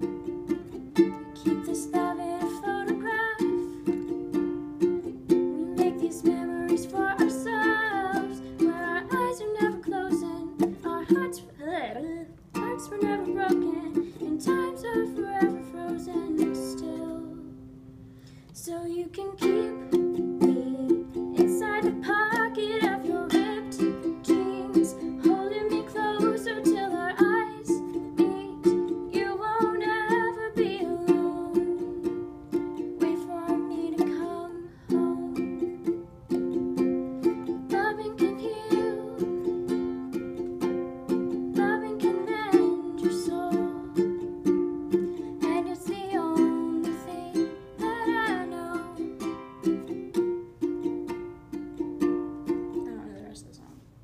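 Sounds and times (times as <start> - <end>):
ukulele strumming: 0.0 - 54.0
woman singing: 1.0 - 4.1, 5.3 - 17.6, 18.5 - 36.0, 37.2 - 40.5, 41.3 - 44.5, 45.1 - 49.4.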